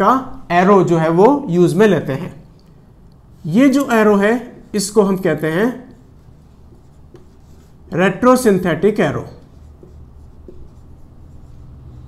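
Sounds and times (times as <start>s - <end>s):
marker writing on whiteboard: 3.2s - 12.0s.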